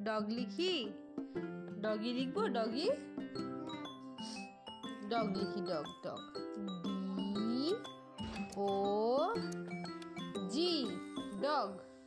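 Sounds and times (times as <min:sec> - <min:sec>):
light children's music: 0:00.0 - 0:12.0.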